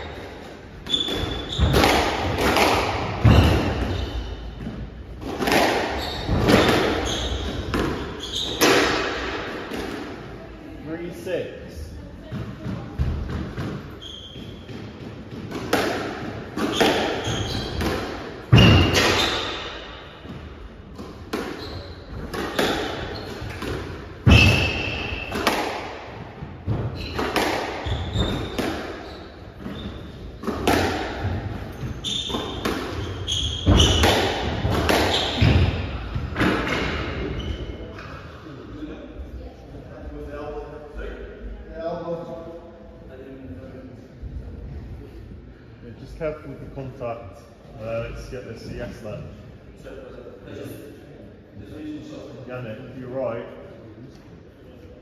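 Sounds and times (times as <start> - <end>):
shoes squeaking on wooden floor: 0.0 - 9.0, 13.9 - 15.4, 16.6 - 20.3, 21.4 - 25.6, 26.7 - 38.0
squash ball cracking off rackets: 30.4 - 31.8, 33.6 - 37.0.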